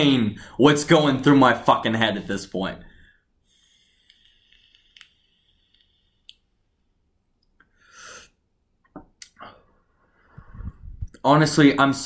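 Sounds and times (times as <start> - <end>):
vape hiss and clicks: 3.5 - 6.6
rush of breath: 9.4 - 11.0.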